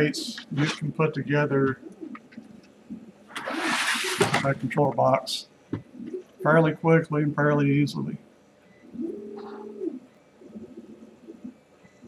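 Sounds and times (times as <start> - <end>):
plastic plate scraping on table: 3.4 - 4.5.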